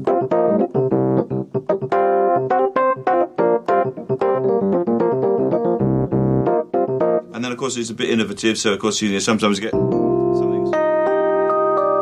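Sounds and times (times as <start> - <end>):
electric piano jazz chords: 0.0 - 7.5, 9.3 - 12.0.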